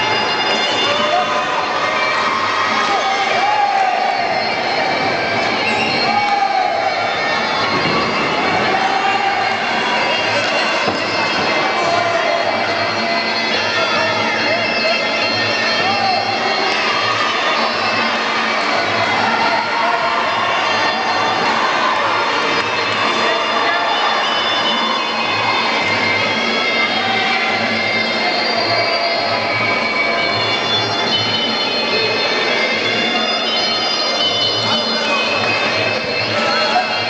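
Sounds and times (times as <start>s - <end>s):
crowd voices: 0.0s - 37.0s
reedy wind pipe melody: 0.0s - 37.0s.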